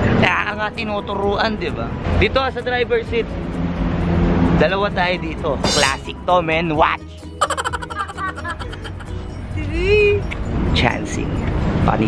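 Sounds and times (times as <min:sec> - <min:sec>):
background music: 0:05.6 - 0:11.4.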